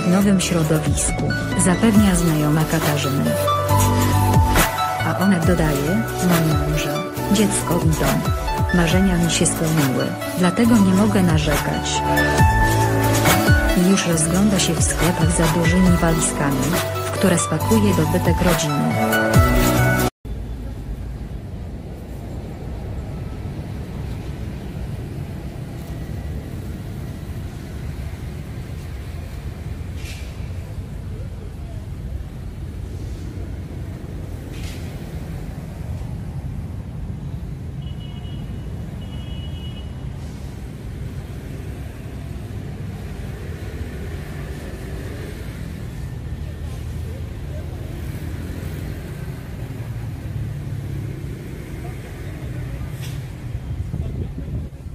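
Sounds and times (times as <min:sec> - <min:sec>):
road traffic rumble: 0:00.0 - 0:54.9.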